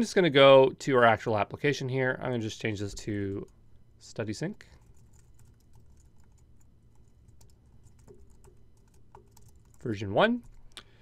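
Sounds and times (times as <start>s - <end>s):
keyboard typing: 4.8s - 10.8s.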